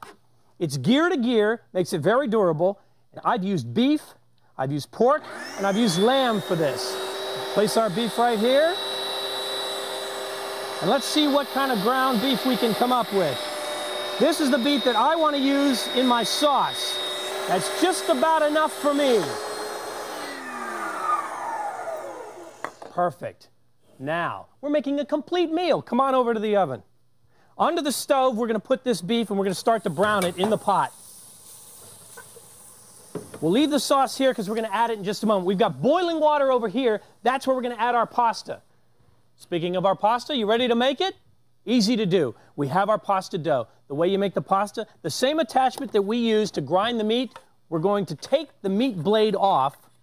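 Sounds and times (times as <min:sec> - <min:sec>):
electric motor whirr: 0:05.2 - 0:22.9
meat sizzling in a pot: 0:29.8 - 0:33.6.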